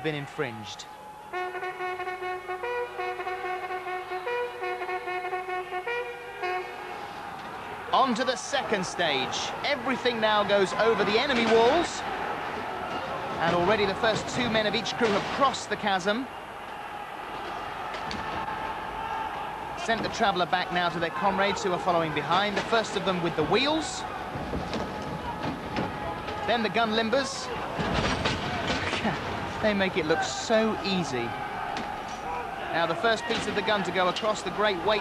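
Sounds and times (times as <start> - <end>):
brass band playing held chords: 1.3 - 14.7.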